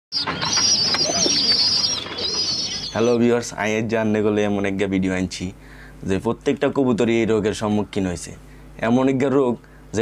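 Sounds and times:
bird trilling: 0.1s - 3.3s.

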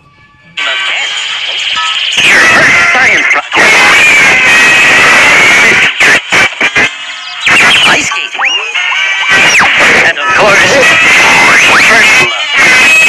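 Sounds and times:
loud cartoon music: 6.5s - 13.0s.

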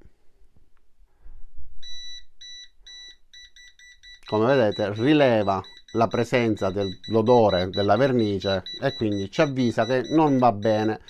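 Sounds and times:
gas detector alarm beeping: 1.8s - 11.0s.

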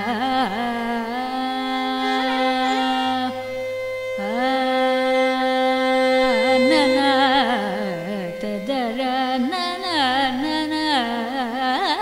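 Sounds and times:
violin: 0.0s - 12.0s
woman singing: 0.0s - 12.0s.

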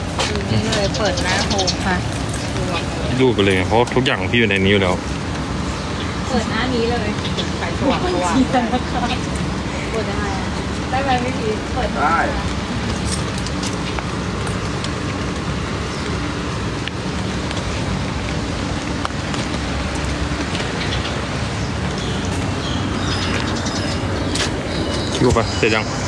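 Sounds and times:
city traffic: 0.0s - 26.0s
falling rain: 0.0s - 26.0s.

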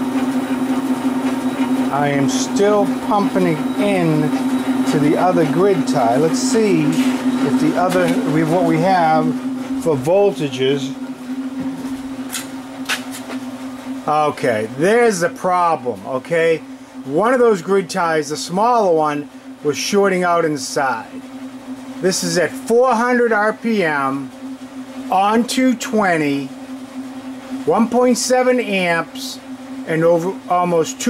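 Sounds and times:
generator steady howl: 0.0s - 31.0s
motor-driven test rig humming: 0.0s - 31.0s.

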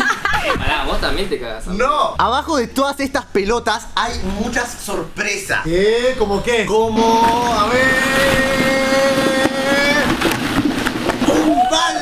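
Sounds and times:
plastic balls rattling: 7.5s - 11.5s.

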